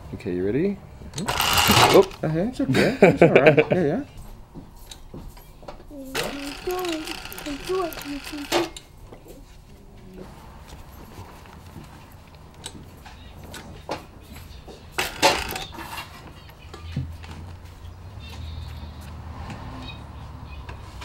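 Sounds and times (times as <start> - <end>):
sewing machine needle rattling: 1.2 - 2.2, 6.2 - 8.8, 15.0 - 15.7.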